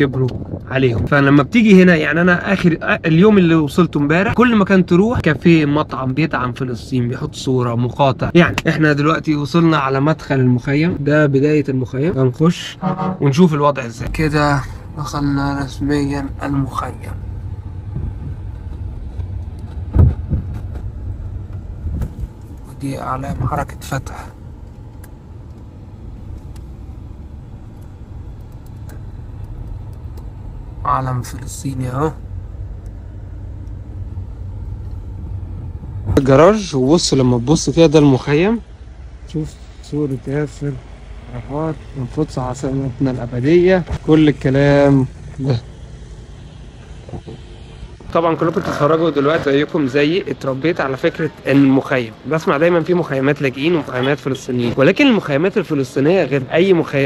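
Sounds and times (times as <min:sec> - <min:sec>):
car engine rumble: 0:00.0 - 0:57.0
road noise inside car: 0:00.0 - 0:57.0
street noise: 0:00.0 - 0:57.0.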